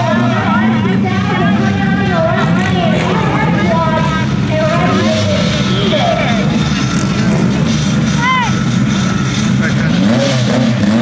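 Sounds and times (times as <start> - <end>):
low rumble of vehicle engines: 0.0 - 11.0.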